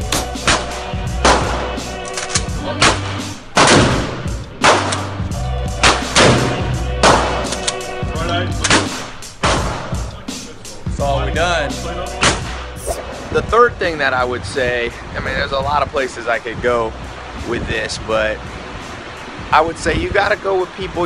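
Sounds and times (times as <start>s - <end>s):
background music with bass line: 0.0s - 21.0s
gunshots echoing indoors: 3.5s - 5.1s.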